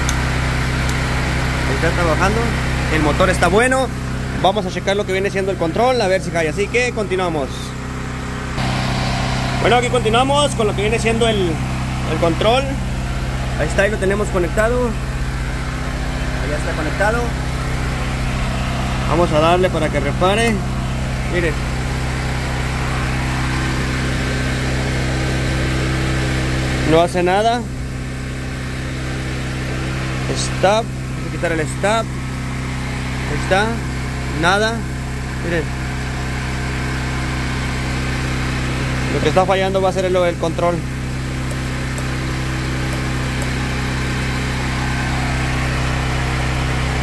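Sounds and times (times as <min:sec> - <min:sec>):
machine hum: 0:00.0 - 0:47.0.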